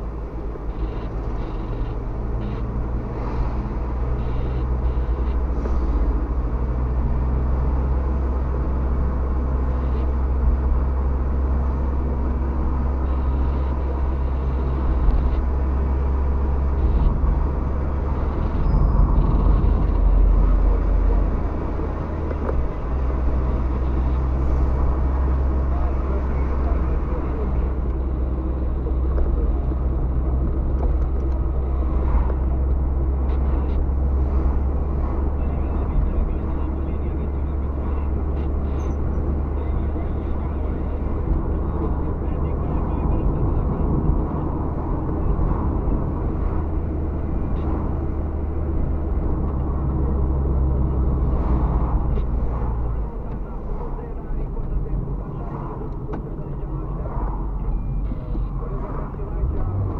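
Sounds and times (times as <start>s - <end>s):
car engine and tyre rumble: 0.0s - 59.9s.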